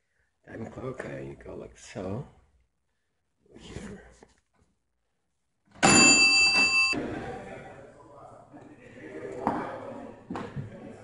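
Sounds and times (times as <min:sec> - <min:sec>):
bell ringing: 0:05.8 - 0:07.0.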